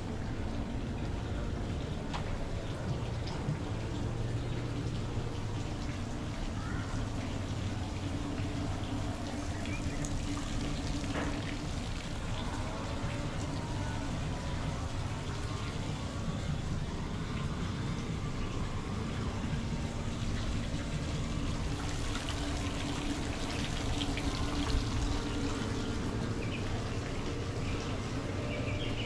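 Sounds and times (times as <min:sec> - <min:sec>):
low hum: 0:00.0 - 0:29.0.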